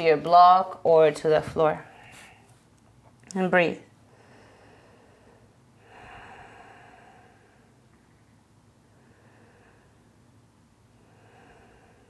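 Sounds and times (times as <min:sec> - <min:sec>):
slow faint breath: 0:04.1 - 0:12.0.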